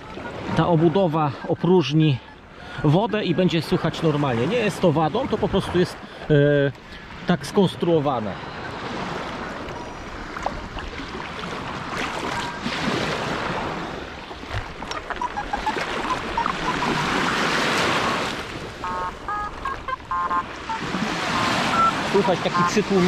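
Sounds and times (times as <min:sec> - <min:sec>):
water sloshing around legs: 0:09.0 - 0:23.0
muffled metal detector beeps: 0:09.6 - 0:10.6, 0:12.3 - 0:12.7, 0:15.1 - 0:23.0.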